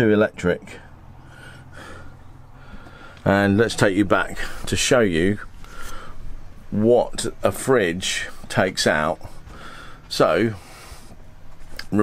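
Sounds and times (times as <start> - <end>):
steady low hum: 0.0 - 12.0
soft breath near microphone: 0.7 - 3.3, 5.4 - 6.5, 9.2 - 11.6.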